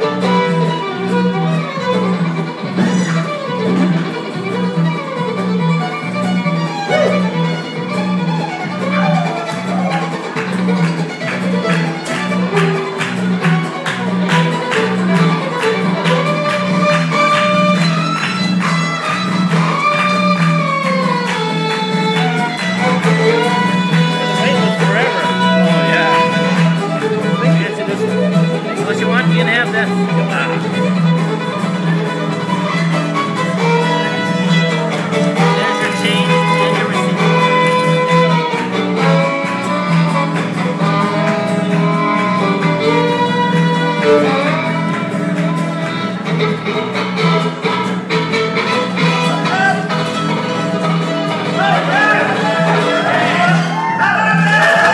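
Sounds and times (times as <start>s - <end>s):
acoustic guitar strumming: 0.0s - 54.9s
fiddle melody: 0.0s - 54.9s
upright bass: 0.0s - 54.9s.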